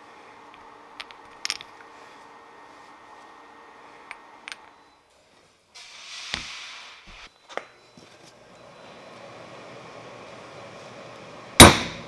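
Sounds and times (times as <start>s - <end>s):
steel stamp striking metal: 11.6s - 12.0s.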